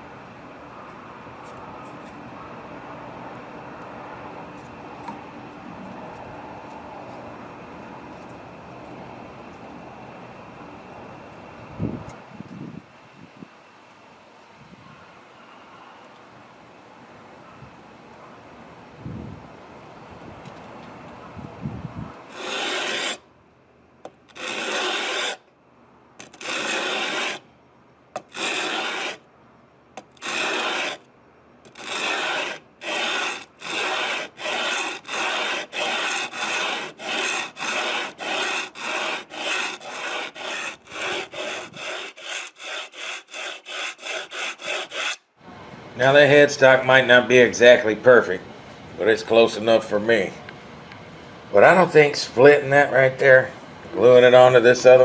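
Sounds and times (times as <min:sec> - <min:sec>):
sandpaper rubbing on wood: 0:22.3 - 0:23.2, 0:24.4 - 0:25.4, 0:26.2 - 0:27.4, 0:28.2 - 0:29.2, 0:30.0 - 0:31.0, 0:31.7 - 0:45.2.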